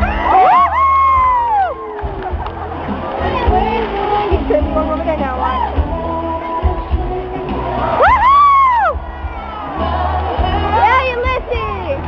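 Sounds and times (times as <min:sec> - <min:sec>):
crowd screaming: 0:00.0 - 0:04.3, 0:07.4 - 0:12.0
crowd noise: 0:00.0 - 0:12.0.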